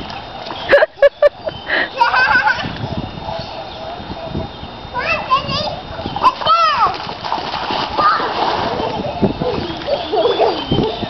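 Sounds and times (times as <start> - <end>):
bare feet wading in mud: 6.9 - 11.0.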